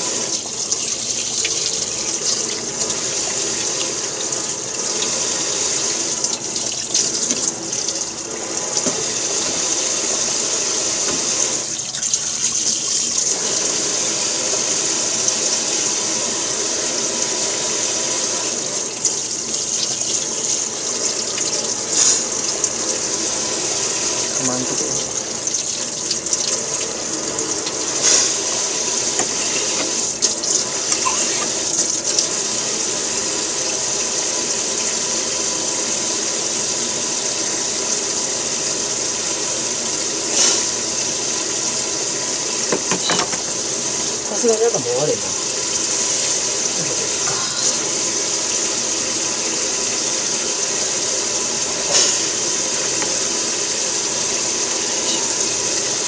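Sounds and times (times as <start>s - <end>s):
tap water running into sink: 0.0s - 56.0s.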